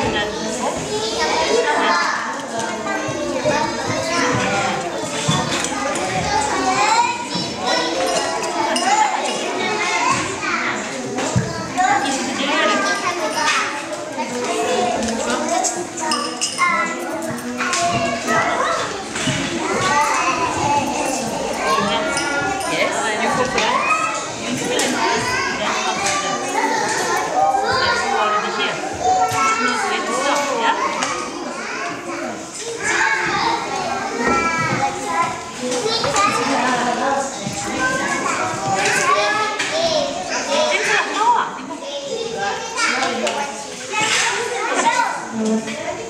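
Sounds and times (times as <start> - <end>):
children talking and calling out: 0.0 - 46.0.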